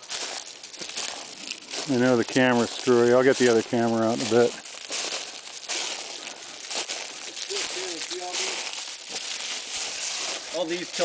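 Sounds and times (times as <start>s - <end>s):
footsteps crunching on dry leaves: 0.0s - 11.0s.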